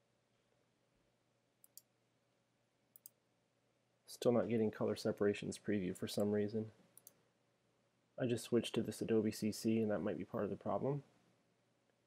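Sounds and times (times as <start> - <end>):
computer mouse clicks: 1.6 - 1.9, 2.9 - 3.2, 7.0 - 7.2.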